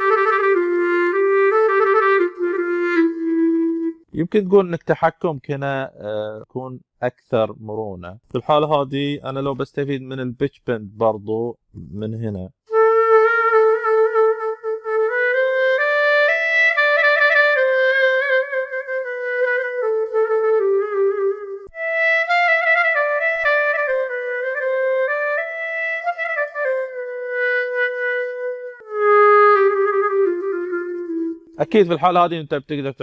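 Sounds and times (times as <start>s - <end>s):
solo clarinet melody: 0.0s - 4.1s, 12.7s - 32.2s.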